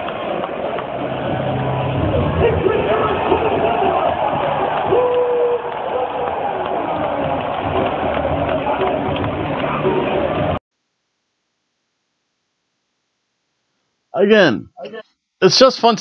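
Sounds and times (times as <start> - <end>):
crowd din: 0.0 - 10.6.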